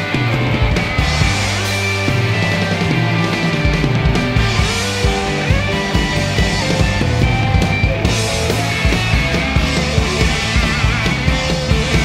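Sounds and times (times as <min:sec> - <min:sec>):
distorted electric guitars: 0:00.0 - 0:12.0
drum beat: 0:00.0 - 0:12.0
rock band playing: 0:00.0 - 0:12.0.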